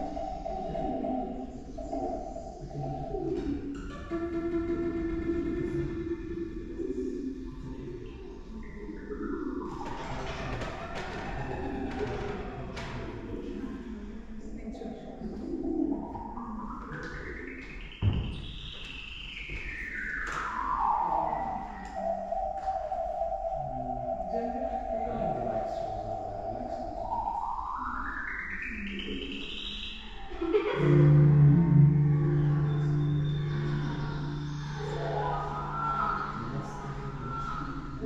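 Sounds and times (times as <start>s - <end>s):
synthetic tone sliding in pitch: 25.0s - 38.0s.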